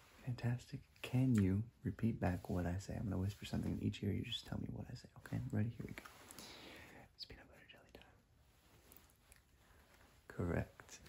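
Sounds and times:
man whispering softly: 0:00.0 - 0:11.0.

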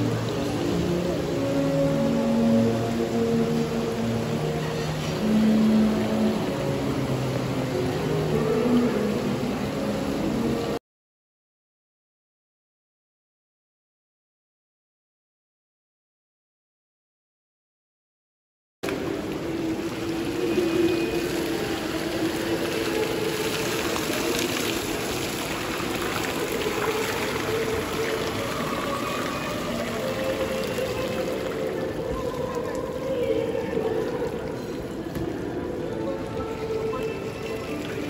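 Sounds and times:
fountain water splashing into basin: 0:00.0 - 0:10.8, 0:18.8 - 0:38.0
music playing: 0:00.0 - 0:10.8, 0:18.9 - 0:38.0.

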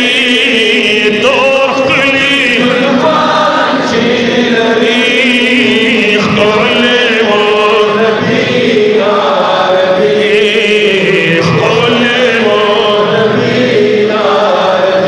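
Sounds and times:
men singing devotional song: 0:00.0 - 0:15.0.

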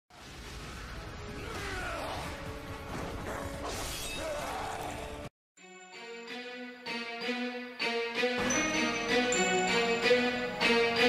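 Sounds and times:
logo music: 0:05.7 - 0:11.0.

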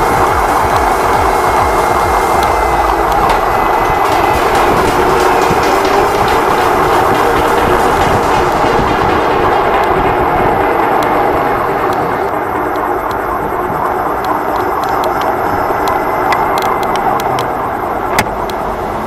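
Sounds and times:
road rumble: 0:00.0 - 0:19.0
wind on microphone: 0:00.0 - 0:19.0.

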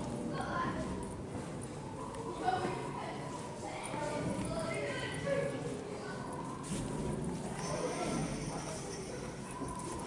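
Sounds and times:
indistinct background voices: 0:01.9 - 0:10.0.

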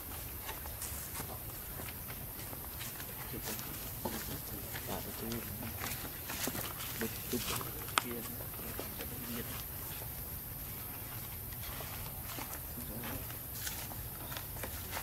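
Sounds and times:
faint voices: 0:01.0 - 0:15.0.

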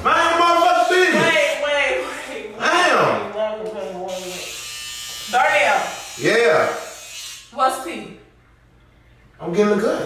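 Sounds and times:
electric hair clippers buzzing: 0:03.7 - 0:07.9.

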